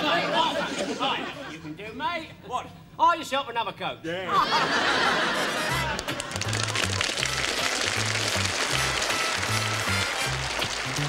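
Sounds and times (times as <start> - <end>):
upbeat instrumental theme music: 5.4 - 11.0.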